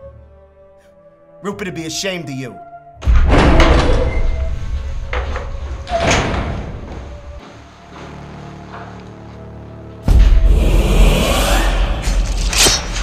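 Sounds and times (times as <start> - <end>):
heavy door slamming: 3.0 - 8.1
deep rumble: 3.0 - 13.0.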